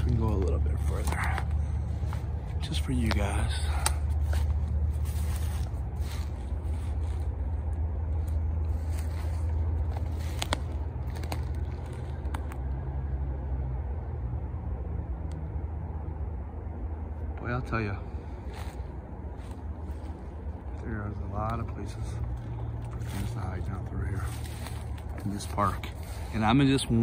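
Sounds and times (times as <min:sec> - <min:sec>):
footsteps through undergrowth: 0:00.0 - 0:12.8, 0:18.2 - 0:27.0
twigs and dry leaves crackling: 0:00.0 - 0:13.2, 0:17.3 - 0:27.0
steady low rumble: 0:00.0 - 0:27.0.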